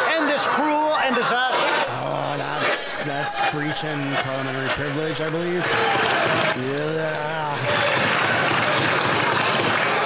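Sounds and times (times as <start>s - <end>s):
many hands clapping: 1.9s - 10.0s.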